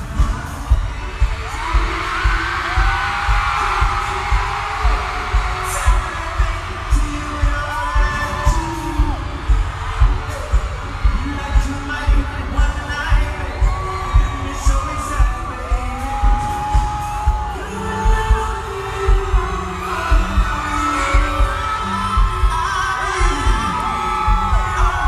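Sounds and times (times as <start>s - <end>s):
crowd noise: 0.0s - 25.0s
heavy bass beat thumping: 0.0s - 25.0s.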